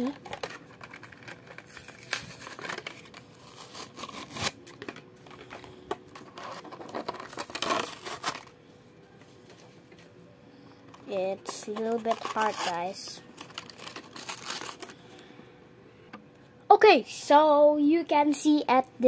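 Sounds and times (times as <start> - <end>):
plastic packaging crinkling and tearing: 0.0 - 8.6, 11.4 - 15.2.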